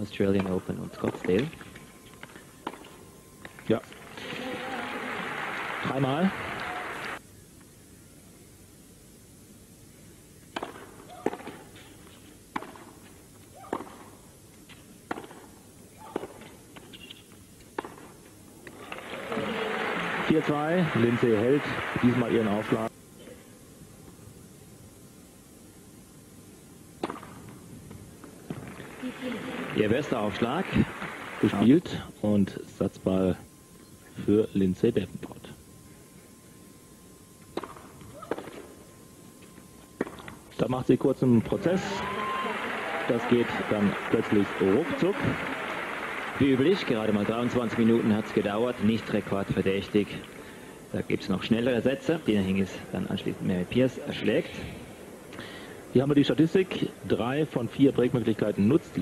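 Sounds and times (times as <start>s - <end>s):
tennis ball hit by rackets: 0.4s - 4.6s, 10.5s - 11.9s, 12.5s - 13.0s, 13.6s - 17.2s, 17.8s - 19.5s, 27.0s - 27.5s, 37.5s - 38.7s, 40.0s - 40.4s
tennis ball struck with racket: 2.6s - 3.0s, 10.5s - 11.7s, 12.5s - 12.9s, 13.6s - 14.1s, 15.1s - 17.1s, 17.8s - 18.1s, 27.0s - 27.4s, 40.0s - 40.4s
crowd applause: 4.0s - 7.2s, 18.8s - 22.9s, 28.8s - 31.7s, 41.5s - 49.6s.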